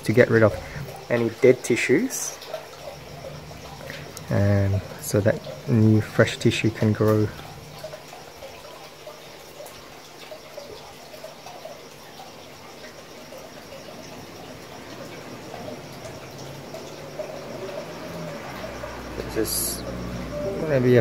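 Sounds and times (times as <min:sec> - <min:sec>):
moving water: 0:00.0 - 0:21.0
small ticks: 0:00.7 - 0:20.5.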